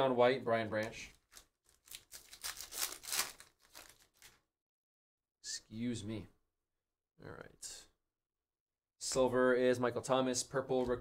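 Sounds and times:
foil wrapper tearing and crinkling: 0:01.2 - 0:04.4.

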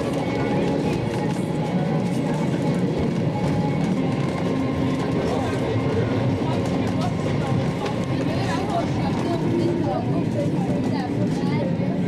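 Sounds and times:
passengers talking: 0:00.0 - 0:12.0
tram rolling rumble: 0:00.0 - 0:12.0.

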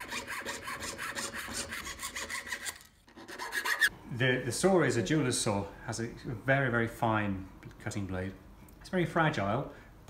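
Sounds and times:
fine saw cutting metal sheet: 0:00.0 - 0:03.9.

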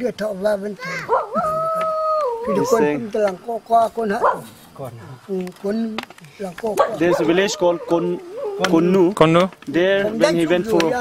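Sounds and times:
voices talking: 0:00.0 - 0:11.0
long high wavering call: 0:01.1 - 0:02.9.

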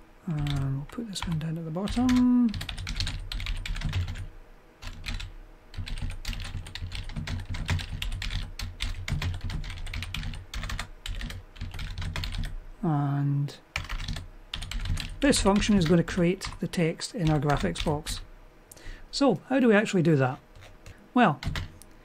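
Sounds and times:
rapid typing on keyboard: 0:00.3 - 0:12.6, 0:13.8 - 0:18.2, 0:20.4 - 0:21.8.

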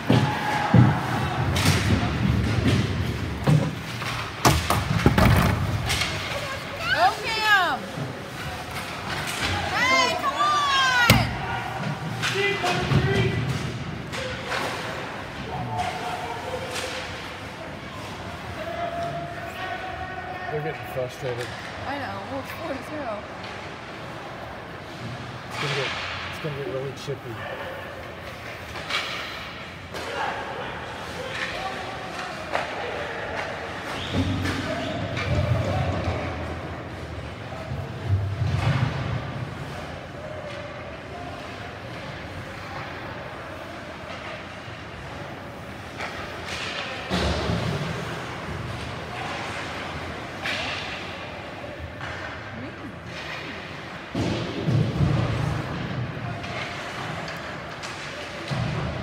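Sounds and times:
puck and players thudding against boards: 0:00.0 - 0:19.1, 0:31.0 - 0:59.0
voices of players and spectators: 0:00.0 - 0:59.0.

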